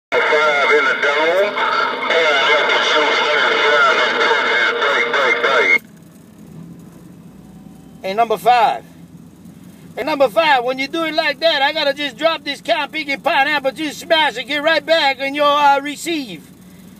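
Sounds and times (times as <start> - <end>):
steady radio tones: 0.1 - 5.8
voice over radio speaker: 0.1 - 5.8, 10.0 - 16.4.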